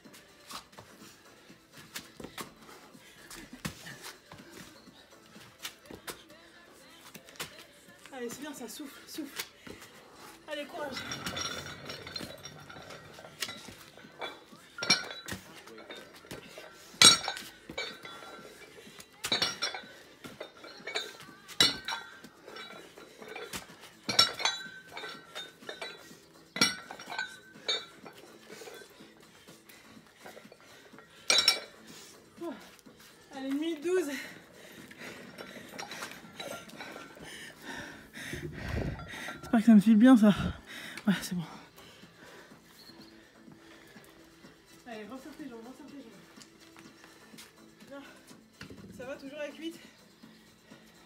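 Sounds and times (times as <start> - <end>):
dumbbell clinking on stone: 10.8 - 29.0, 30.2 - 31.9.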